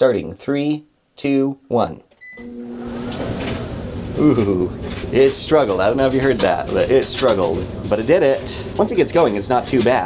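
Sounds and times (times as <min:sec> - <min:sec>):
control panel beep: 0:02.2 - 0:02.6
dryer drum motor running: 0:02.4 - 0:10.0.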